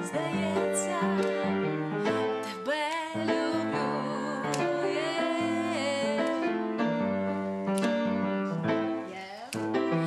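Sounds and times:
grand piano playing chords: 0:00.0 - 0:10.0.

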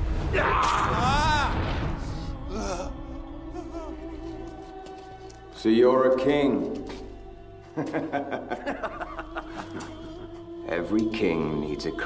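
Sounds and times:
soft film score music: 0:00.0 - 0:12.0
man gasping and moaning: 0:01.0 - 0:04.5.

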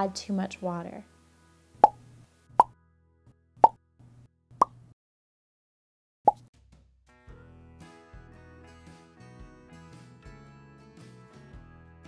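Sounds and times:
light background music: 0:00.0 - 0:02.8, 0:07.2 - 0:12.0.

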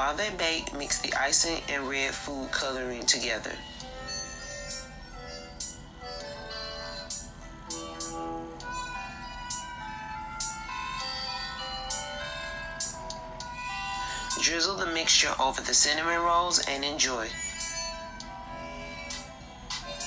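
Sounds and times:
music through phone speaker: 0:00.0 - 0:20.0.

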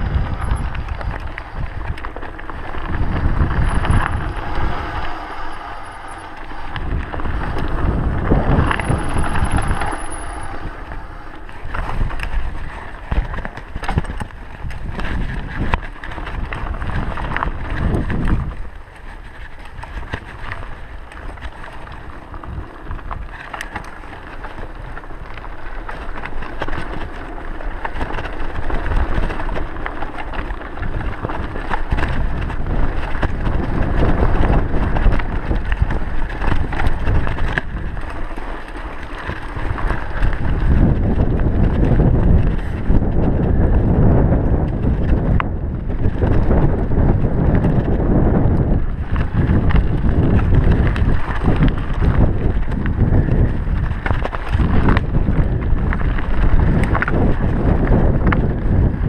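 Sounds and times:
bike rattling over bumps: 0:00.0 - 0:59.0
bike tyres on dirt and stones: 0:00.0 - 0:59.0
wind buffeting microphone: 0:00.0 - 0:59.0.

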